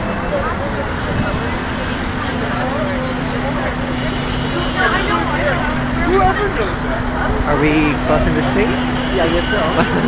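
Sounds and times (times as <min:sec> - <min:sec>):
city traffic: 0:00.0 - 0:10.0
crowd chatter: 0:00.0 - 0:10.0.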